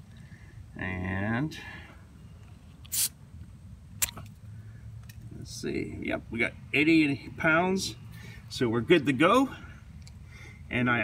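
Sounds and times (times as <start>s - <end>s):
short sharp air hiss: 2.9s - 3.2s.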